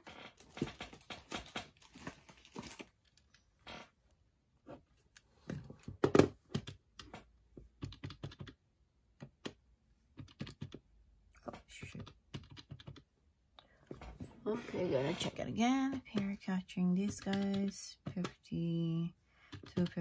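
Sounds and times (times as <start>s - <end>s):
calculator keys clicking: 7.8s - 8.6s, 10.2s - 10.8s, 11.8s - 13.0s, 15.9s - 18.6s, 19.5s - 20.0s.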